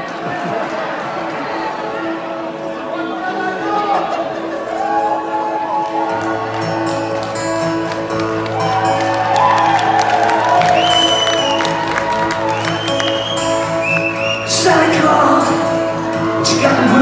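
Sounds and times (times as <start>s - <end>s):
keyboard and guitar chords: 1.9s - 17.0s
audience cheering and applauding: 4.6s - 16.2s.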